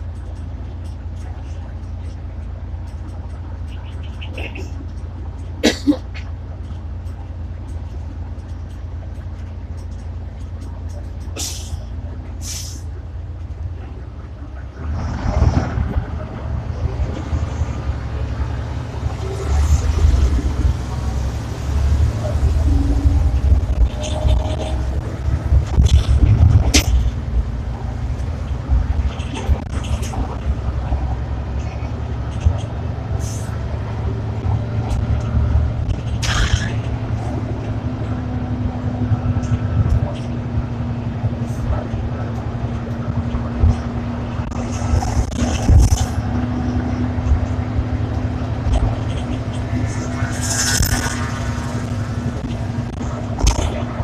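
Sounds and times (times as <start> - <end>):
bus diesel engine drone: 0.0 - 54.0.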